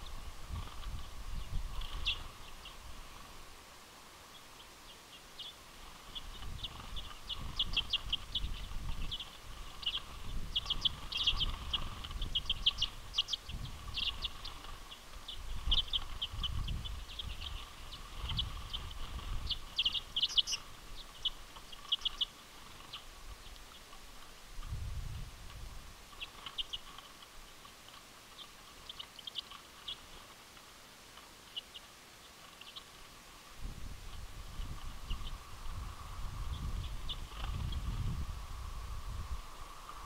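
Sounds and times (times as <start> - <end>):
flock of birds chittering: 0.0 - 24.8, 25.5 - 40.0.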